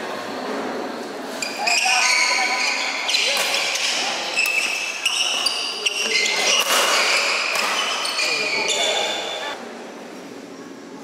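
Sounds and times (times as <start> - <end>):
sneakers squeaking on court floor: 1.4 - 9.6.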